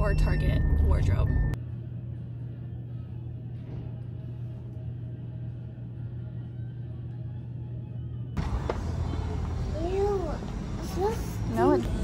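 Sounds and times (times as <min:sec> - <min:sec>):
steady low hum: 0:00.0 - 0:12.0
full background noise: 0:08.4 - 0:12.0.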